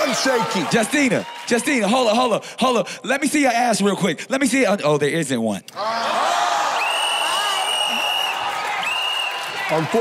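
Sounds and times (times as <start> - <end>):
studio crowd noise and voices: 0.0 - 10.0.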